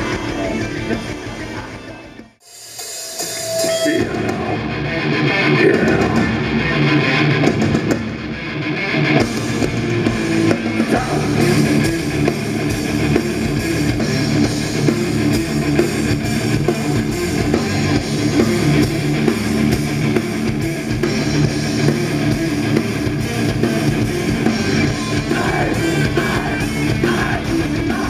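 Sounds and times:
drum kit: 0.0s - 8.4s, 9.0s - 28.0s
electric guitars: 0.0s - 28.0s.

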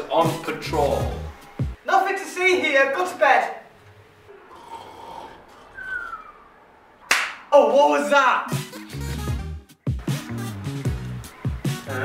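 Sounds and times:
person snoring: 4.5s - 5.7s
thin falling whistle: 5.8s - 6.5s.

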